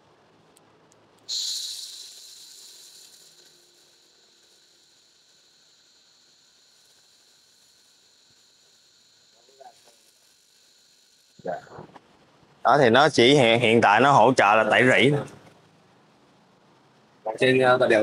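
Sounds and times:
laser burning metal hiss: 1.2s - 12.0s.

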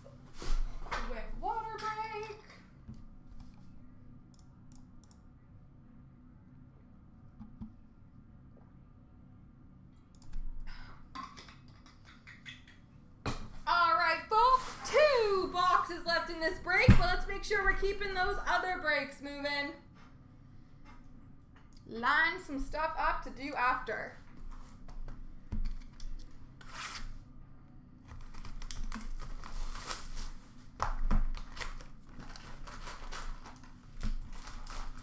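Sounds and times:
room hum: 0.0s - 35.0s.

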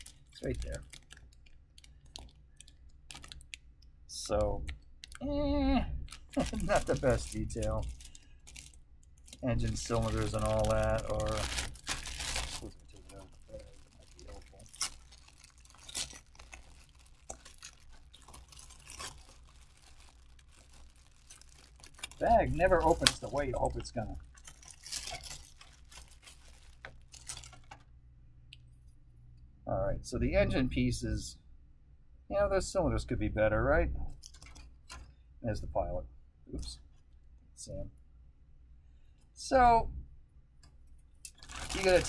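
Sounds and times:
plastic bag crinkling: 0.0s - 3.7s, 6.0s - 27.9s, 34.2s - 35.0s, 41.3s - 42.0s.

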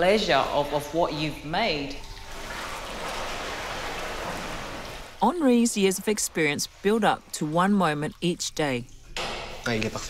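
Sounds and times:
liquid running: 0.1s - 10.0s.

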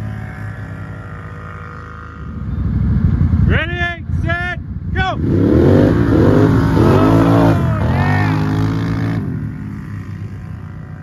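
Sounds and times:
atv engines revving: 0.0s - 11.0s.

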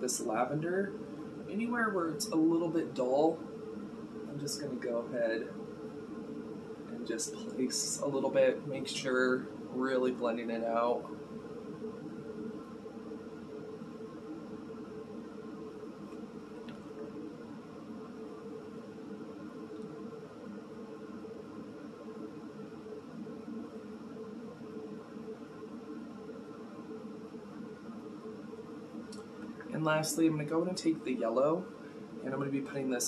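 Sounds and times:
background hum: 0.0s - 33.0s.

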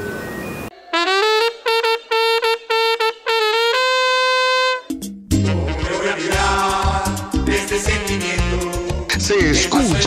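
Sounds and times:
solo trumpet fanfare: 0.8s - 5.9s.

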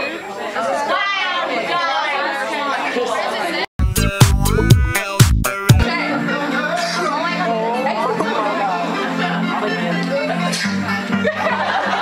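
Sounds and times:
people chattering: 0.0s - 3.7s, 5.8s - 12.0s
music with a strong beat: 3.8s - 5.9s.

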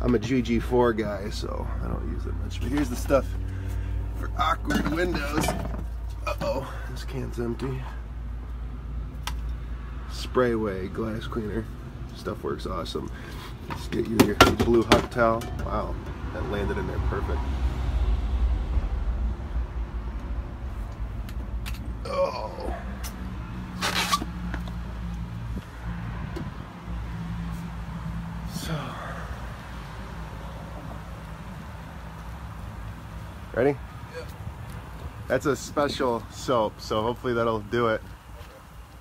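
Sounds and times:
steady low rumble: 15.1s - 23.5s.

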